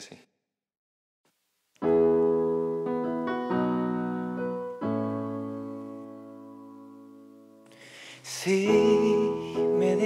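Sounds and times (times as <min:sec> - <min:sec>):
piano chords ringing: 0:01.8 - 0:10.0.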